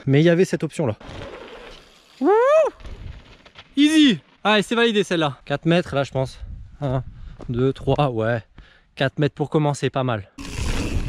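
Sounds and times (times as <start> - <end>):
person whooping: 2.2 - 2.8.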